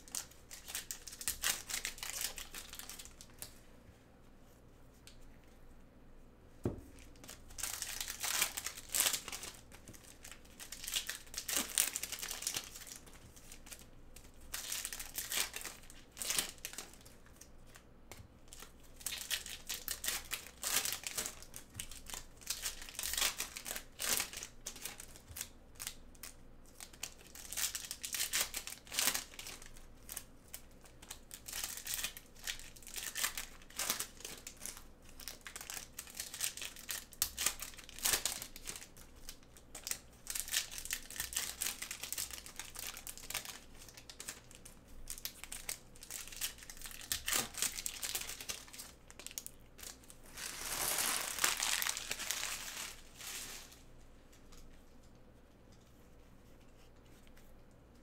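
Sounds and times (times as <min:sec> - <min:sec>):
foil wrappers crinkling and tearing: 0:00.0 - 0:03.5, 0:06.9 - 0:17.8, 0:18.5 - 0:53.9
foil rustling: 0:45.1 - 0:53.9.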